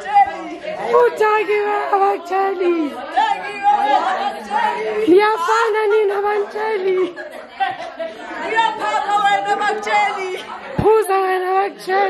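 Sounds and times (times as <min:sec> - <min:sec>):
women chattering excitedly: 0:00.0 - 0:12.0.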